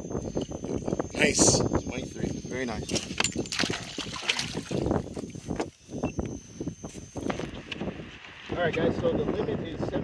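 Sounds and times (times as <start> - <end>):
wind buffeting microphone: 0.0 - 10.0
water sloshing against boat: 2.8 - 5.8.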